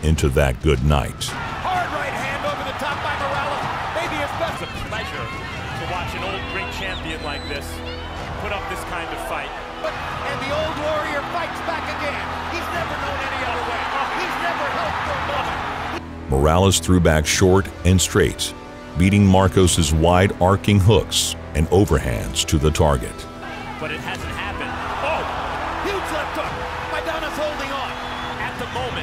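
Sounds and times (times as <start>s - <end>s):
crowd shouting: 1.3s - 16.0s, 23.4s - 29.0s.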